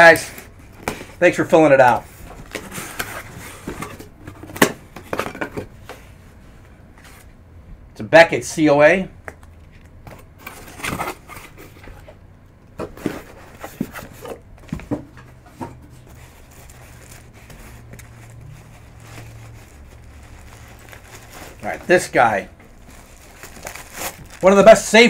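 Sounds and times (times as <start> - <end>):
cardboard box and bag handled: 15.9 - 25.0.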